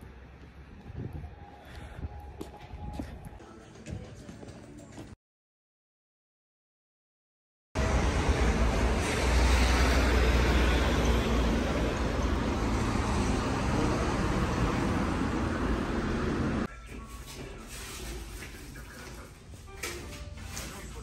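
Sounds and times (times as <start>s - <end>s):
cars passing close by: 7.8s - 16.7s.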